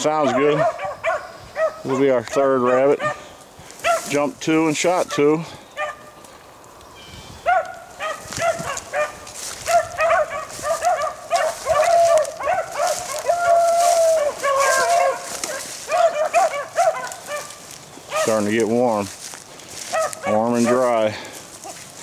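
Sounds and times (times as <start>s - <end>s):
dogs baying: 0.0s - 4.1s, 5.0s - 6.2s, 7.4s - 18.6s, 19.8s - 21.9s
dog howling: 7.5s - 18.3s.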